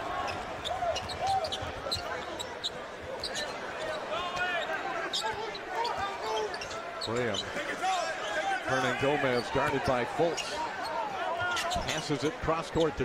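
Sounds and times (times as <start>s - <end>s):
arena crowd noise: 0.0s - 13.0s
sneaker squeaks: 0.2s - 8.1s, 9.3s - 12.1s.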